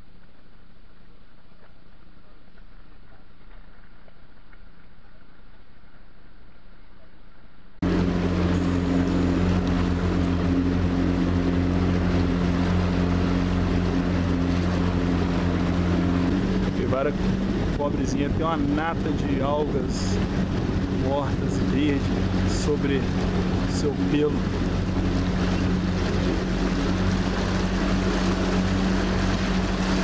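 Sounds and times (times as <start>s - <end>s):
boat motor humming: 7.5s - 30.0s.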